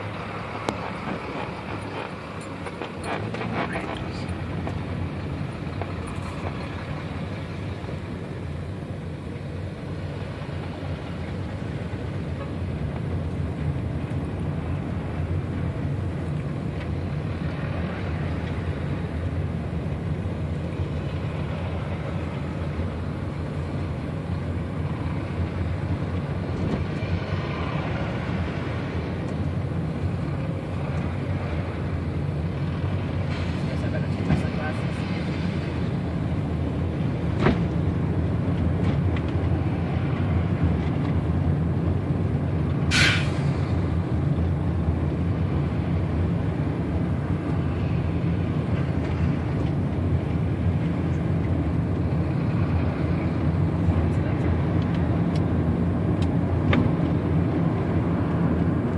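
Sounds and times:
heavy lorries passing: 0.0 - 58.9
road and engine rumble: 0.0 - 58.9.

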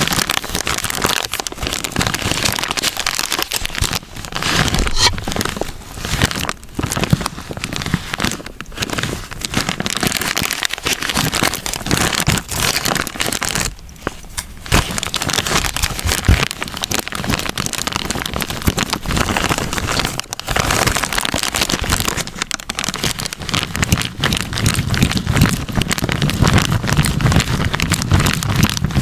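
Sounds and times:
plastic bag crinkling: 0.0 - 29.0
wet porridge squishing: 0.0 - 29.0.

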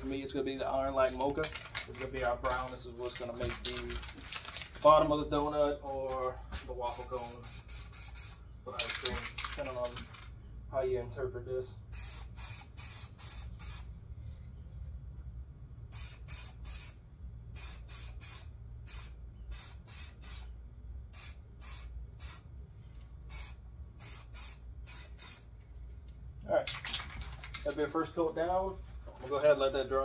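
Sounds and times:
spray paint can hissing: 6.9 - 9.1, 11.9 - 13.9, 15.9 - 17.0, 17.6 - 22.5, 23.3 - 25.5.

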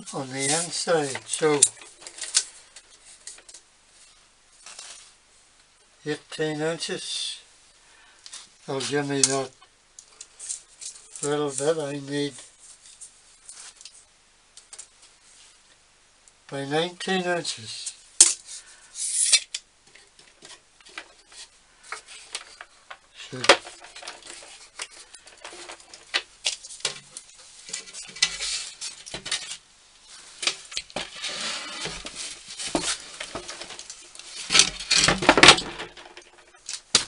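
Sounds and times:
scraping and knocking on wood: 30.4 - 36.5.

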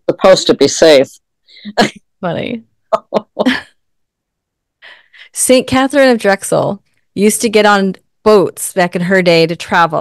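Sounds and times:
woman laughing: 1.6 - 2.0, 2.9 - 3.8.

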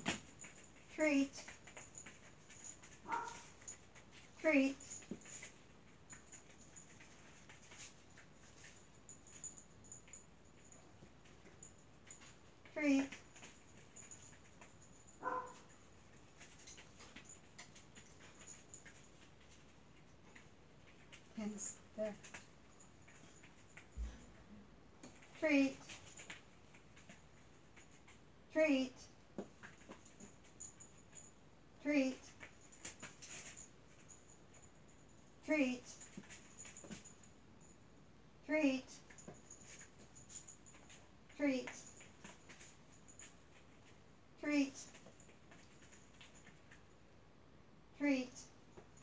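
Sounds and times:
faint light ticks and shuffles: 0.0 - 49.0.

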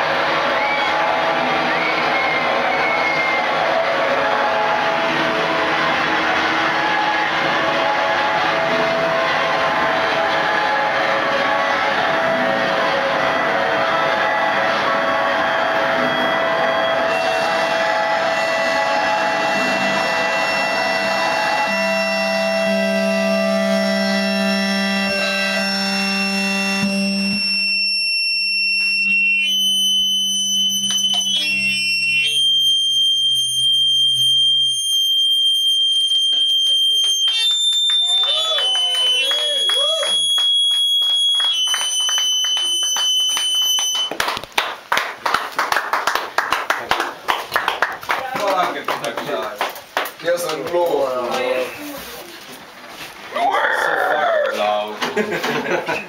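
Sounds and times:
distorted noise-rock guitars: 0.0 - 37.9
sustained droning tones: 0.0 - 44.0
high steady tones with pitch glides: 0.2 - 44.1.

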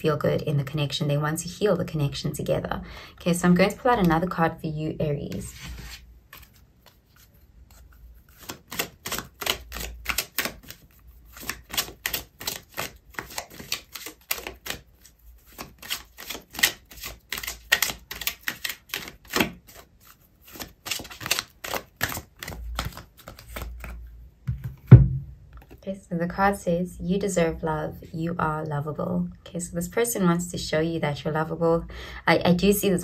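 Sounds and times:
cards being shuffled by hand: 5.2 - 25.8
sharp knock: 24.9 - 25.3.

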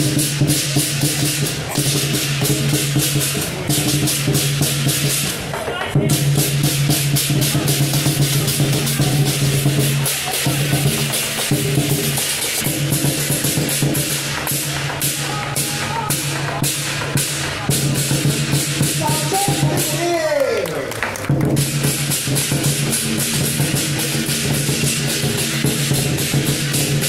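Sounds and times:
large drum beating: 0.0 - 20.3, 21.3 - 27.0
cymbals clashing: 0.0 - 20.4, 21.5 - 27.0.

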